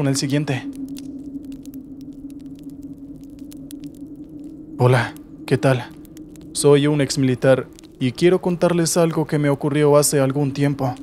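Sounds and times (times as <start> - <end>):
faint clicks and crackles: 0.0 - 11.0.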